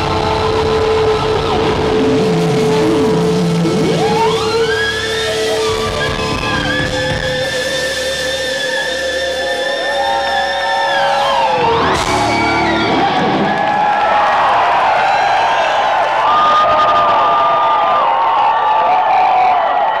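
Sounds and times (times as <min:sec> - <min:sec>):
sustained electric guitar notes: 0:00.0 - 0:10.2, 0:11.4 - 0:13.7
live rock band playing: 0:00.0 - 0:14.0
crowd cheering: 0:00.0 - 0:20.0.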